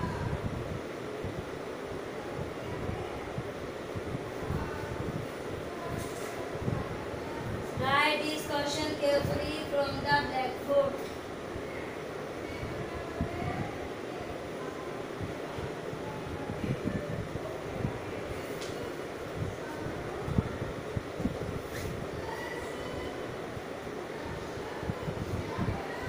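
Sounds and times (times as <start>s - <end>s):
steady rumbling noise: 0.0s - 26.0s.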